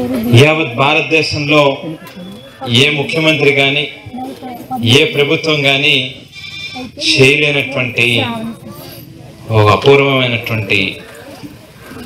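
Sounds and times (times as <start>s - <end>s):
man speaking over loudspeaker: 0.3s - 4.1s, 4.8s - 8.4s, 9.4s - 11.2s.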